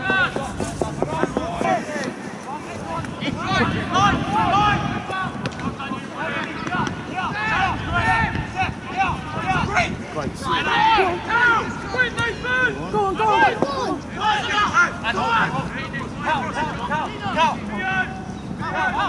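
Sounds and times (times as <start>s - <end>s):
people shouting calls: 1.3s - 19.0s.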